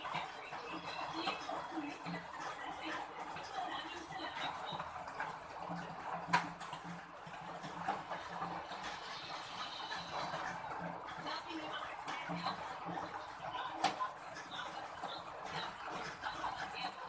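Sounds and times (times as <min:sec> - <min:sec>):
cat chewing and smacking: 0:00.0 - 0:17.0.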